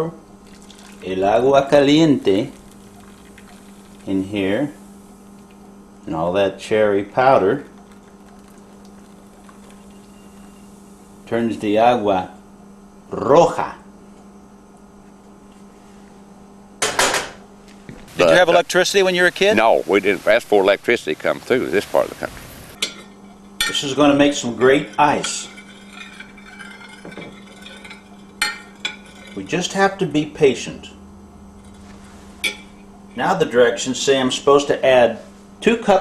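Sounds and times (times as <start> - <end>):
steady low hum: 0.0 - 36.0
water trickling into a pan: 0.4 - 1.1, 2.5 - 4.3, 7.7 - 10.6
spoon stirring liquid: 24.6 - 29.4.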